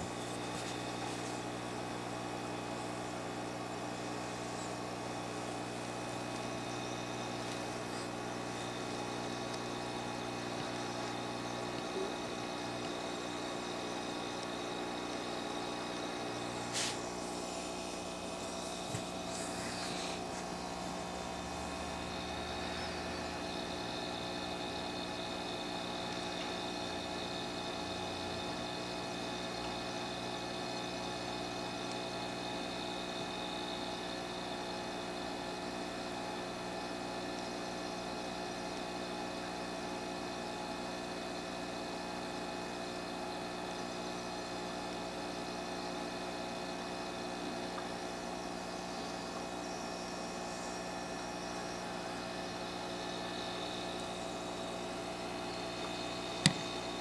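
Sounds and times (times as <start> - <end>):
steady hum with hiss: 0.0 - 57.0.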